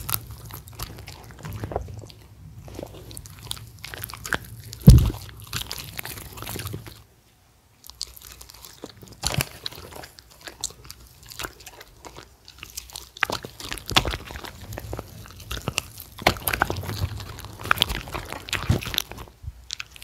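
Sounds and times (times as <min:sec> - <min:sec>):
dogs chewing food: 0:00.0 - 0:07.1, 0:07.8 - 0:20.0
jaws clicking and smacking: 0:00.0 - 0:07.1, 0:07.9 - 0:20.0.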